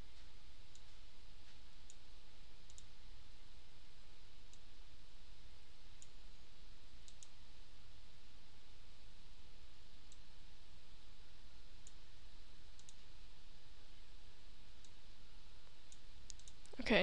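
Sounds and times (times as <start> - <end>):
background hiss and low hum: 0.0 - 17.0
computer mouse clicking: 2.6 - 2.9, 7.0 - 7.4, 12.8 - 13.1, 15.9 - 16.8.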